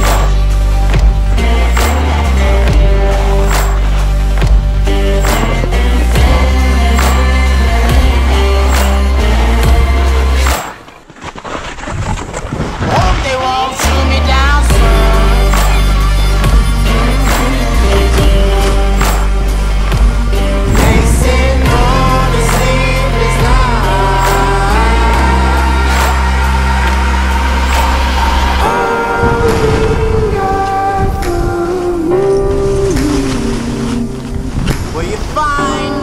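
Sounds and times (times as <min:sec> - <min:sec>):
backing music: 0:00.0 - 0:10.8, 0:13.0 - 0:36.0
deep bass note: 0:14.3 - 0:31.2
sustained tones: 0:14.6 - 0:34.4
gliding tones: 0:14.8 - 0:35.6
rushing wind-like noise: 0:25.0 - 0:32.0.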